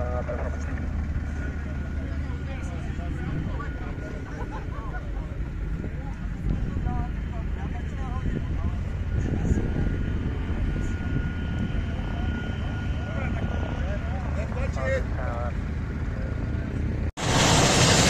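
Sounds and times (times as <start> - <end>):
faint voices: 0.0 - 17.0
high turbine whine: 0.0 - 18.0
low turbine rumble: 0.0 - 18.0.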